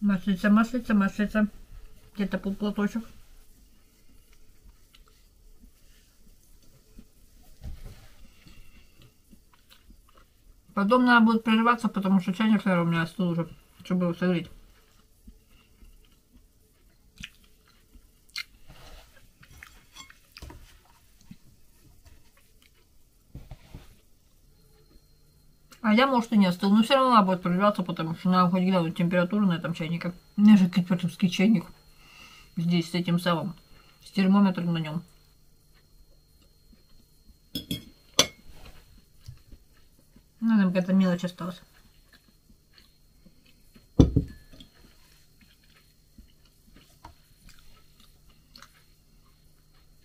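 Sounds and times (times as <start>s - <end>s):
person chewing food: 3.5s - 7.2s, 8.3s - 10.5s, 14.6s - 21.6s, 22.2s - 23.0s, 35.6s - 37.5s, 38.9s - 40.4s, 41.7s - 50.0s.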